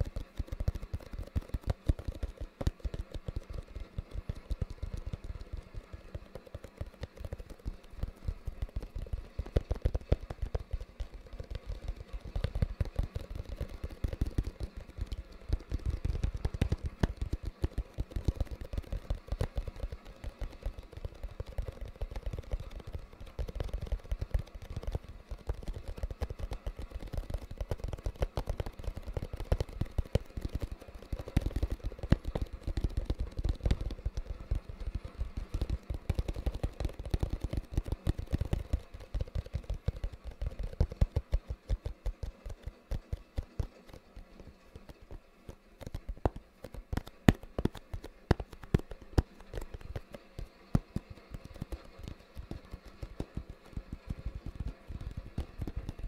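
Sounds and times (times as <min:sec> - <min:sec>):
fingertips tapping on cardboard box: 0:00.0 - 0:56.0.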